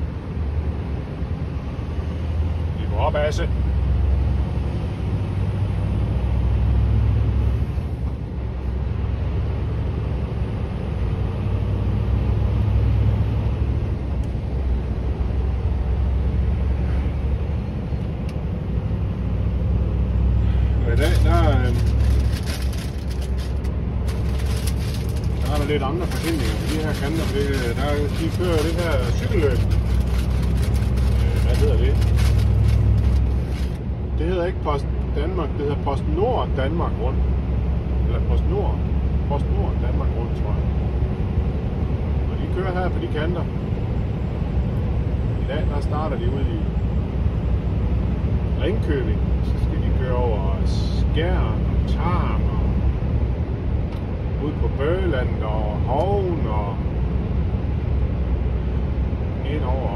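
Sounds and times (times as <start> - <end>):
road noise: 0.0 - 59.9
truck engine drone: 0.0 - 59.9.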